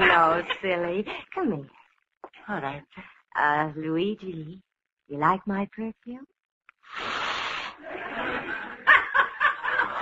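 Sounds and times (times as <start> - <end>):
laughter on old radio recording: 0.0 - 1.3, 7.8 - 10.0.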